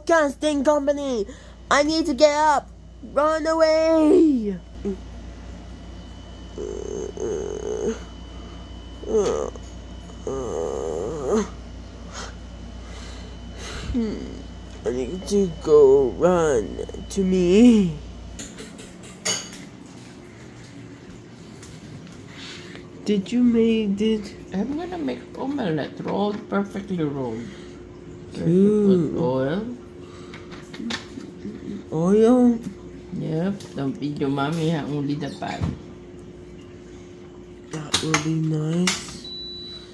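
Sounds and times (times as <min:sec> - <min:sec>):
child making wavering noise: 0:06.6 - 0:08.2, 0:09.0 - 0:11.6, 0:14.0 - 0:15.1.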